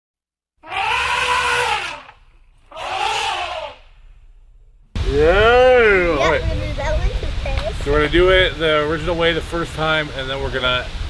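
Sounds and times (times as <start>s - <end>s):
elephant trumpeting: 0.6s - 4.2s.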